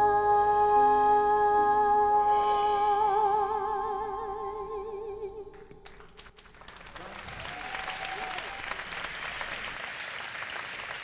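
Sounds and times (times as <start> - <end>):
audience applause: 5.8 - 11.0.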